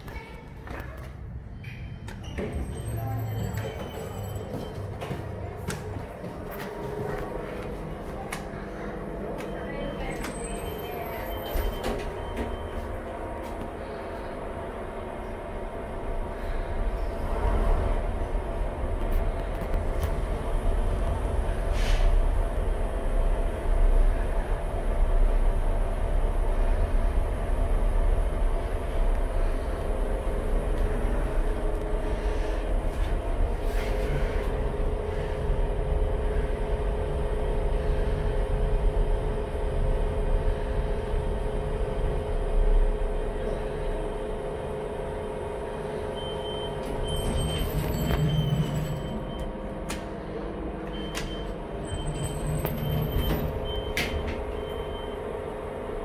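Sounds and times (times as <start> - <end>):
lift rumble: 0.0 - 56.0
low machine hum: 0.0 - 56.0.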